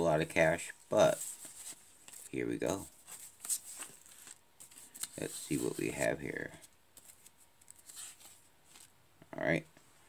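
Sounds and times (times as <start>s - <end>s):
paper receipt rustling: 0.4s - 8.9s
paper crinkle: 0.9s - 9.0s.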